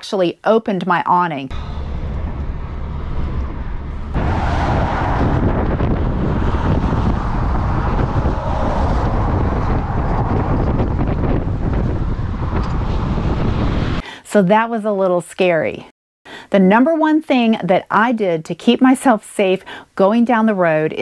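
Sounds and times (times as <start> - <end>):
vehicle road noise: 1.5 - 14.0
wind buffeting microphone: 1.5 - 14.0.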